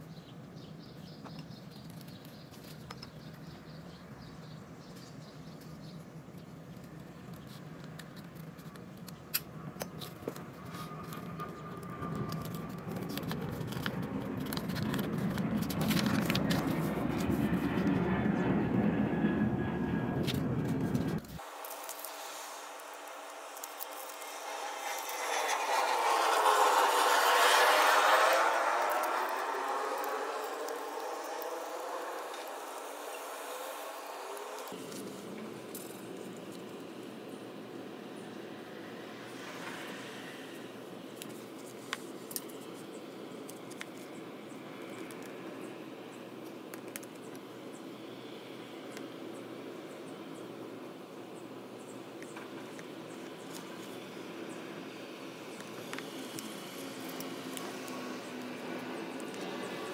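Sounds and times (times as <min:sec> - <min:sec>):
rushing noise: 0:10.8 - 0:34.9.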